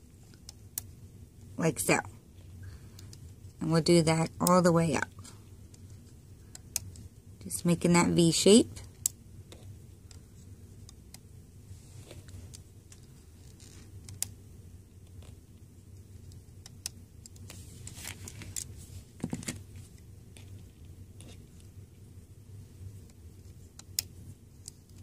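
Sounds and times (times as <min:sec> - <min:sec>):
faint low hum: 0:00.0 - 0:25.0.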